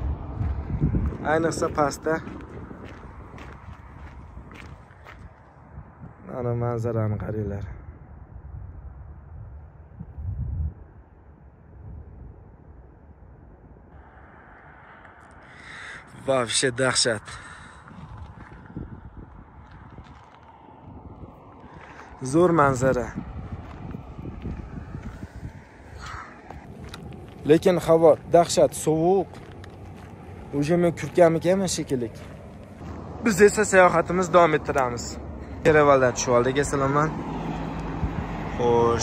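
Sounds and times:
low outdoor rumble: 0.0 - 39.0
footsteps on stony ground: 0.2 - 5.8, 17.3 - 35.8.

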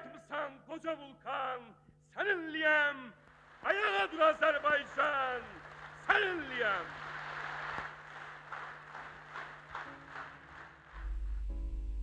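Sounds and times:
audience applause: 3.4 - 11.2
background music with held tones: 3.7 - 12.0
deep low drone: 11.0 - 12.0.

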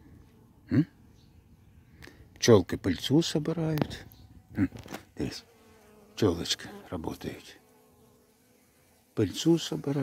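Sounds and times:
bees buzzing: 3.4 - 10.0.

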